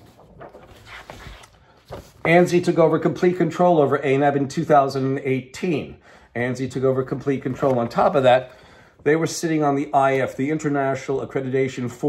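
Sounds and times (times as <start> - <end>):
paper sheets rustling: 0.0 - 2.8, 6.9 - 8.8, 9.6 - 10.8.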